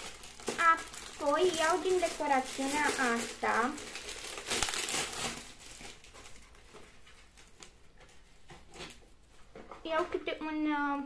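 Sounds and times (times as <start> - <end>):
packaging crinkling: 0.0 - 9.0.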